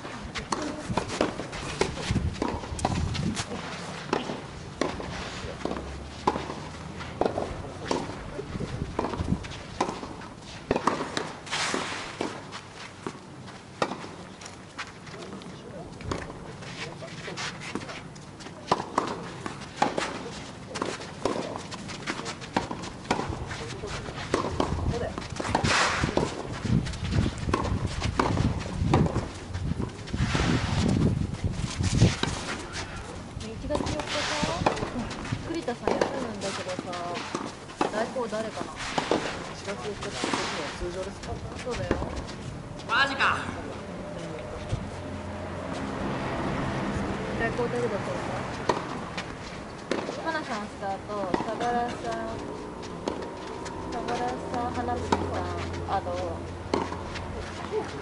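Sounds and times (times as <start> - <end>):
footsteps: 0.0 - 58.0
tennis ball knocks: 7.2 - 8.2, 8.9 - 12.4, 24.3 - 26.5, 27.5 - 30.4, 33.7 - 35.2, 48.6 - 49.3, 49.9 - 58.0.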